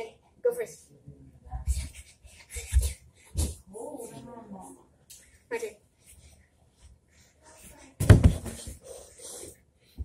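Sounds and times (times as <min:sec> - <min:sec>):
loud thump: 0:08.0 - 0:08.6
bumping and rustling on stairs: 0:08.0 - 0:08.8.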